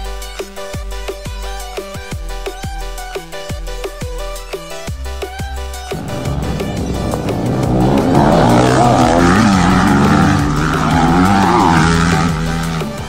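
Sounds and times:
music: 0.0 - 13.0
dirt bike engines revving: 5.5 - 13.0.

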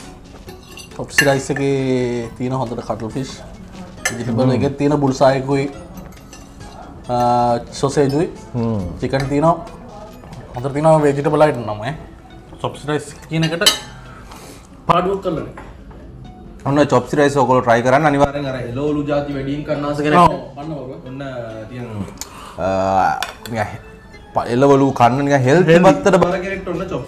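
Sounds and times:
cutlery clinking on plates: 0.3 - 1.8, 4.0 - 4.4, 5.8 - 8.3, 13.1 - 14.1, 23.2 - 24.3.

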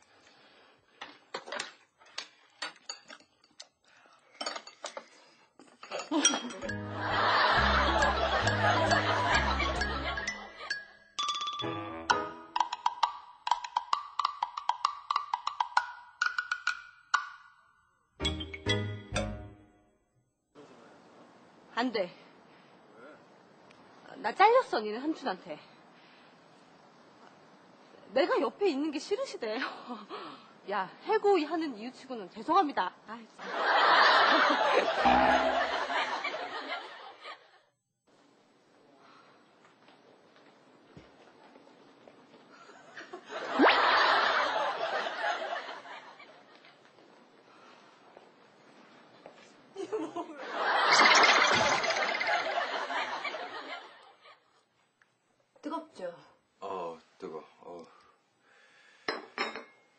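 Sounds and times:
cutlery clinking against dish: 2.6 - 3.7, 4.4 - 5.1, 5.7 - 6.8, 59.1 - 59.8
loud laughter: 6.9 - 10.3, 33.5 - 37.4
short laugh: 35.0 - 36.0.

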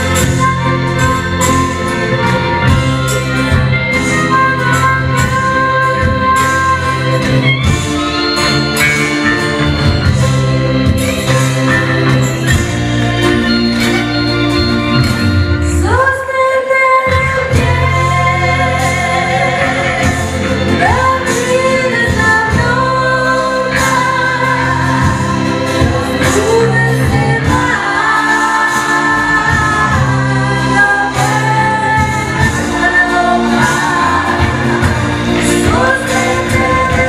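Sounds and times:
live blues band: 0.0 - 37.0
woman singing: 15.7 - 37.0
backing voices singing: 17.0 - 37.0.

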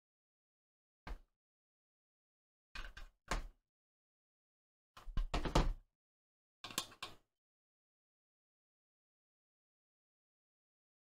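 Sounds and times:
plastic parts clicking and knocking: 2.8 - 3.5, 5.0 - 5.8, 6.6 - 7.2.

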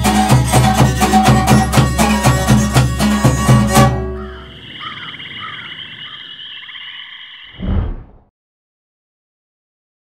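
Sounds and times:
high pulsing insect trill: 4.2 - 7.6
brief low thump: 7.6 - 8.3.

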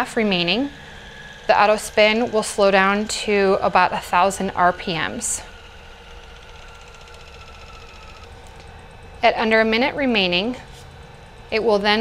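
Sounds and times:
centrifuge motor whine: 0.0 - 12.0
low hum: 0.0 - 12.0.

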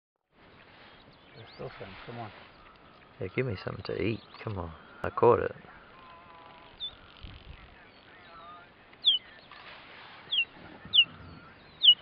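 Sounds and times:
cheetahs chirping: 0.5 - 12.0.

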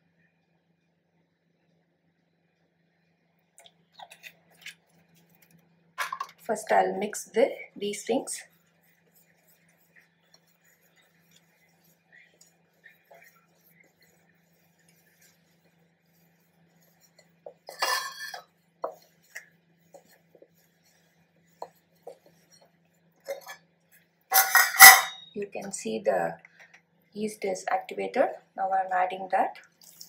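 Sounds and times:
hands rubbing in bowl: 6.2 - 24.6.

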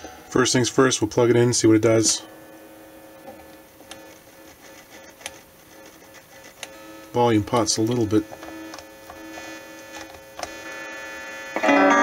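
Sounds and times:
guitar amplifier hum: 0.0 - 12.0.

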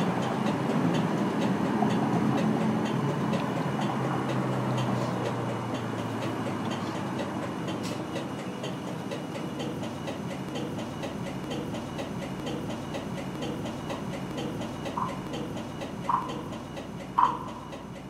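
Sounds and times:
soft rapid ticks: 0.0 - 18.0.

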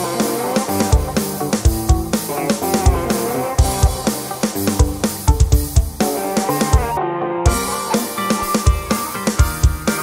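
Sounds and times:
electronic music with drum beat: 0.0 - 10.0.

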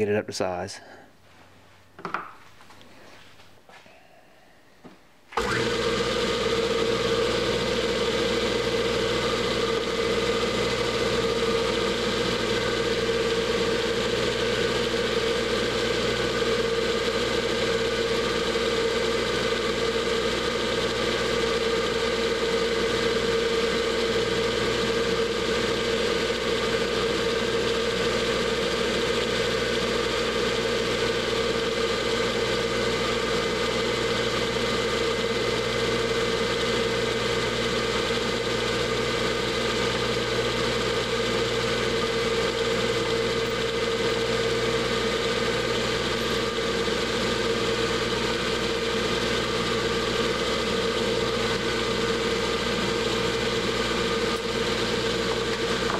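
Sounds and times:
drill cutting into steel bar: 5.4 - 55.9
lathe motor humming: 5.4 - 55.9.

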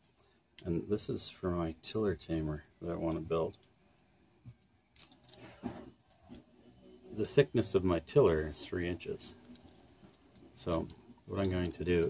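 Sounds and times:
light metallic clinks: 4.9 - 5.4.

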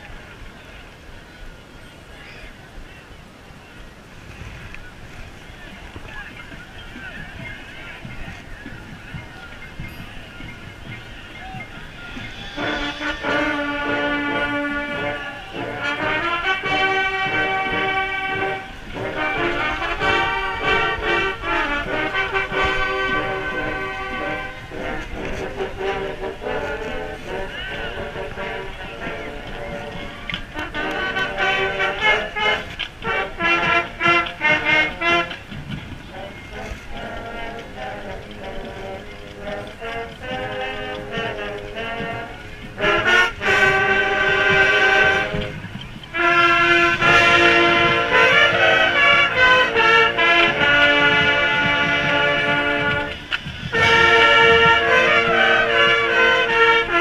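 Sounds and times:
marching band brass chords: 4.4 - 57.0.

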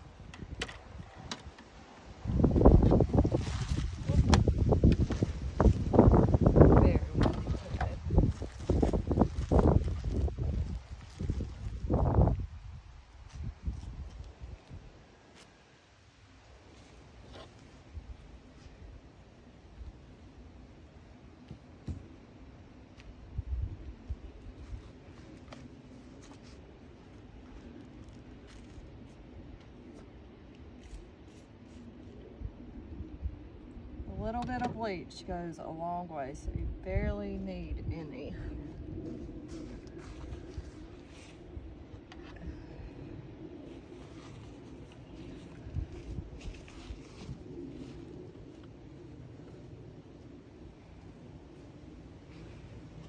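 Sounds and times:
wind buffeting microphone: 0.0 - 15.0, 23.1 - 25.3, 31.8 - 53.0.

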